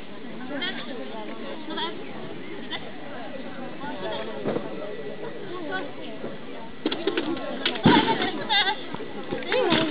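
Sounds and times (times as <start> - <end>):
people talking and calling: 0.0 - 9.9.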